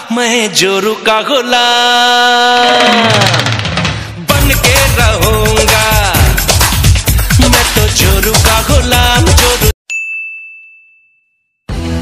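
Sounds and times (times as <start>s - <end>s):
loud music: 2.5s - 9.8s
bright bell ding: 9.9s - 11.6s.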